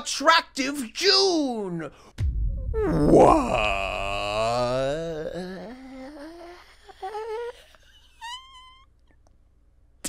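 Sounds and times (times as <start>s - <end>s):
man moaning: 2.8s - 7.0s
man whimpering: 2.9s - 8.5s.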